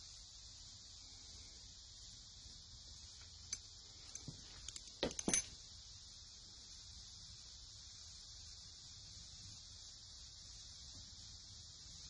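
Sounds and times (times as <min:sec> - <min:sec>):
metal clinks and knocks: 0:03.5 - 0:05.6.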